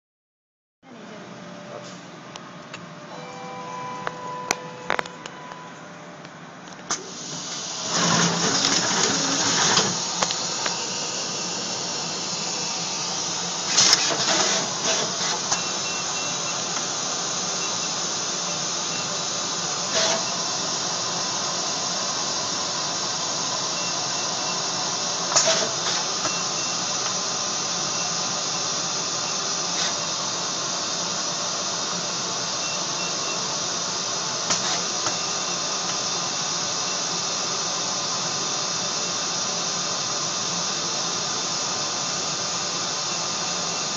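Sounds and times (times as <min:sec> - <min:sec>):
short beeps: 0:03.1 - 0:05.9
machinery hissing: 0:06.9 - 0:43.9.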